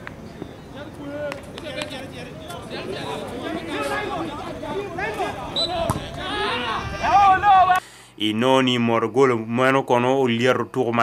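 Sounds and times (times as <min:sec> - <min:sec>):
spectators shouting and chattering: 0:00.0 - 0:07.8
football being kicked: 0:05.8 - 0:06.2.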